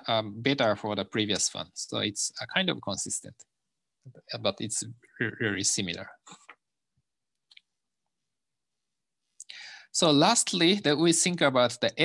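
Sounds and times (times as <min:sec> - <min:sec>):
person speaking: 0:04.1 - 0:06.7.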